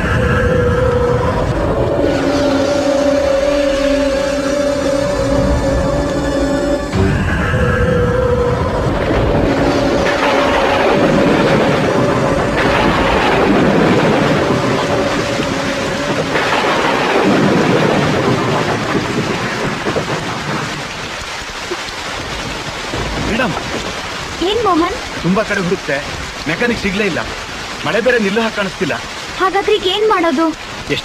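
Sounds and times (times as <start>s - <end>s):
rain falling: 0.0s - 31.0s
thunder rumbling: 0.0s - 31.0s.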